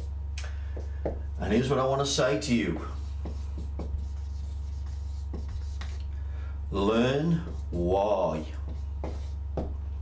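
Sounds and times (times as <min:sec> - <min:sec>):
steady low hum: 0:00.0 - 0:10.0
marker pen writing on paper: 0:02.8 - 0:06.0, 0:08.6 - 0:09.7.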